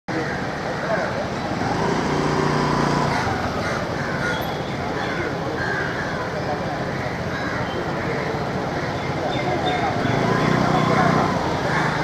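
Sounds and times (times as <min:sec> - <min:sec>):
people talking: 0:00.1 - 0:12.0
road traffic: 0:00.1 - 0:12.0.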